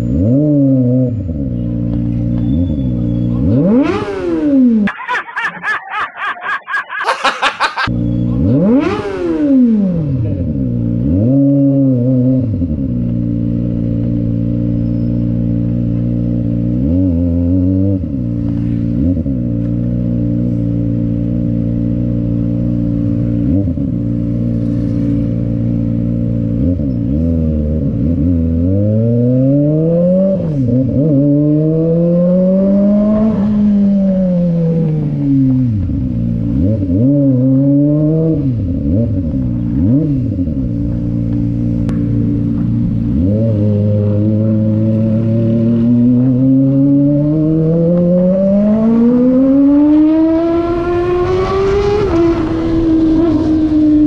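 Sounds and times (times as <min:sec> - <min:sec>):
motorcycle engine idling and revving: 0:00.0 - 0:05.1, 0:07.0 - 0:54.0.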